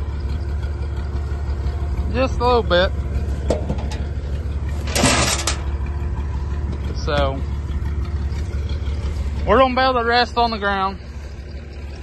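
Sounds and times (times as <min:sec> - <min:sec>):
idling engine hum: 0:00.0 - 0:12.0
sheet metal scraping in grass: 0:03.3 - 0:05.9.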